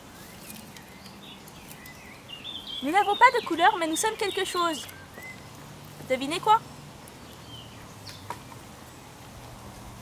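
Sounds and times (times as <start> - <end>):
faint bird chirps: 0.1 - 5.6.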